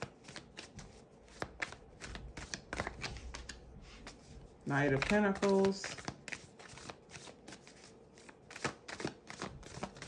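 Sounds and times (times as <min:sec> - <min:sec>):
cards being shuffled: 0:00.0 - 0:10.0.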